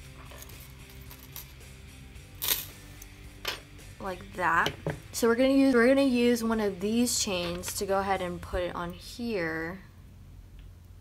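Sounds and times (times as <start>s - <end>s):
soft background music: 0.0s - 9.8s.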